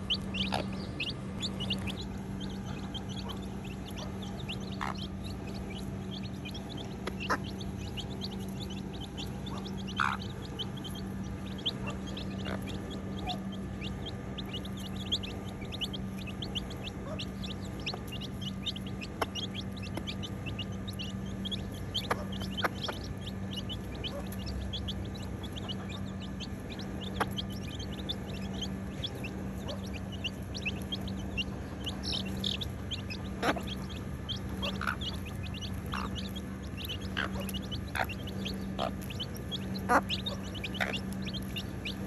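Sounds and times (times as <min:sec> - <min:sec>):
chicks peeping: 0:00.0 - 0:42.0.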